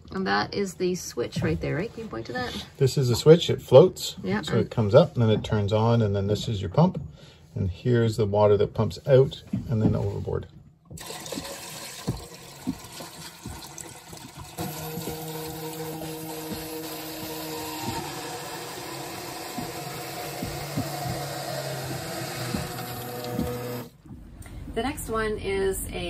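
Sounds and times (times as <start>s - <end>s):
electric pump humming: 10.9s - 24.2s
water splashing from bucket: 10.9s - 24.2s.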